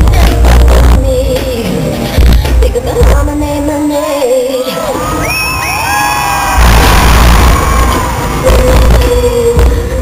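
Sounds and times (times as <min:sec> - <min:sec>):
crowd screaming and cheering: 0:03.9 - 0:10.0
loud burst with deep bass: 0:06.5 - 0:09.9.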